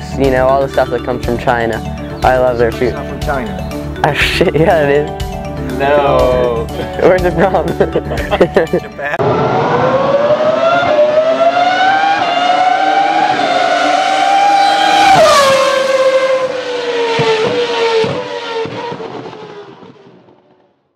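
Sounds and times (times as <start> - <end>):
racing car engine revving: 9.2 - 20.0.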